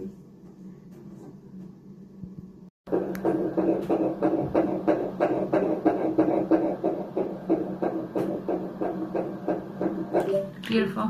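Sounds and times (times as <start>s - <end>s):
fetal heartbeat on doppler: 2.9s - 10.5s.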